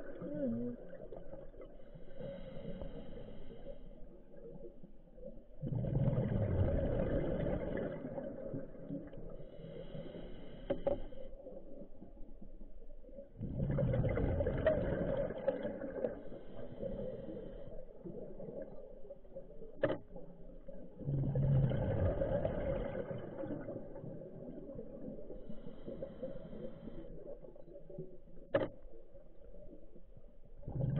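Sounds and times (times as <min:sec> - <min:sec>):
regulator bubbles underwater: 0:00.0 - 0:30.9
diver exhaling bubbles: 0:05.6 - 0:09.0, 0:13.4 - 0:17.5, 0:20.9 - 0:27.2, 0:30.6 - 0:30.9.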